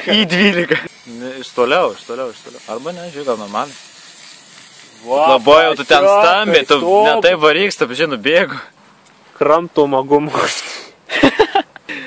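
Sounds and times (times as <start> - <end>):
aerosol spray can hissing: 0.8 - 7.1
voices: 4.8 - 8.8.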